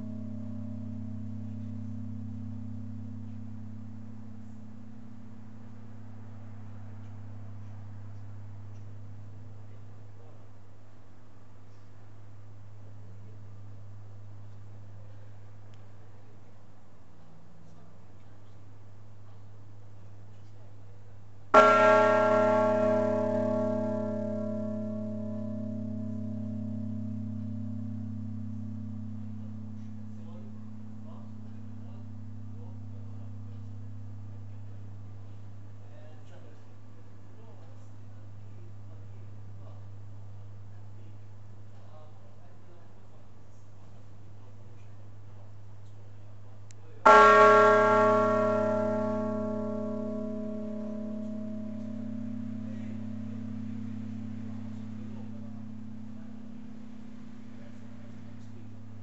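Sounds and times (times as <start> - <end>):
church bell ringing: 0.0 - 6.2, 21.5 - 35.0, 47.0 - 59.0.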